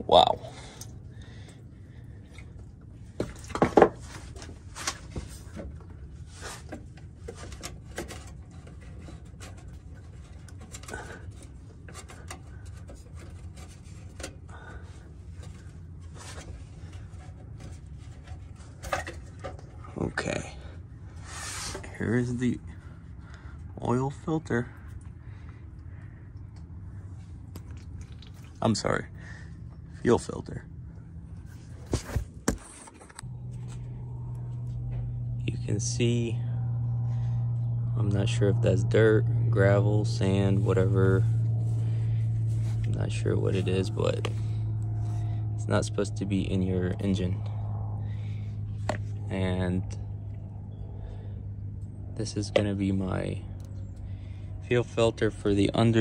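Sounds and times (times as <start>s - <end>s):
low background rumble: 0.0s - 56.0s
steady low hum: 0.0s - 56.0s.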